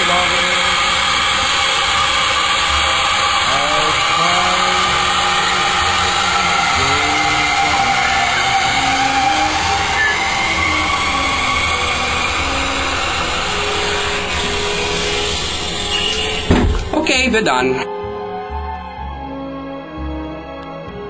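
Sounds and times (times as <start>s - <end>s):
faint whining tones: 0.0s - 17.0s
toilet tank refilling hiss: 0.0s - 17.0s.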